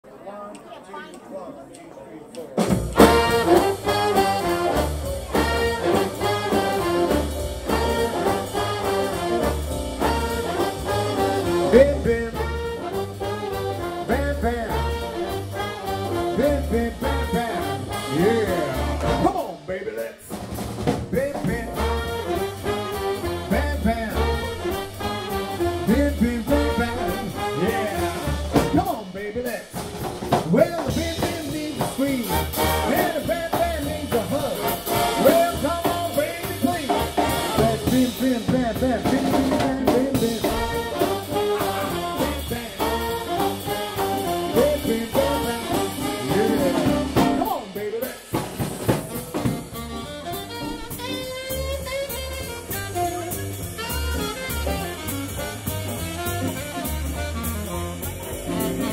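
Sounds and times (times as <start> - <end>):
big band playing swing: 0.0 - 58.9
man singing: 3.0 - 20.4, 21.0 - 29.8, 30.4 - 48.9.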